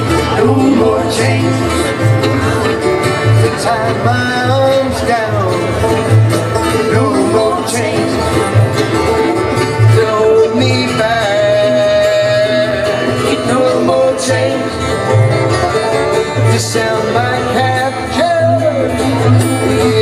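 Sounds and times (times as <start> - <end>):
bluegrass band playing: 0.0 - 20.0.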